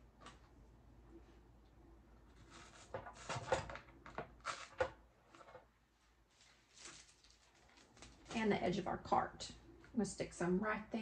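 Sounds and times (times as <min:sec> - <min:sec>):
dry moss rustling: 0:06.3 - 0:08.5
plastic packaging crinkling: 0:06.3 - 0:08.8.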